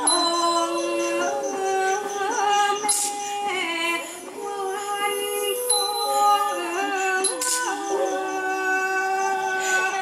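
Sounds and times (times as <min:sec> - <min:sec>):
woman singing classical song: 0:00.0 - 0:10.0.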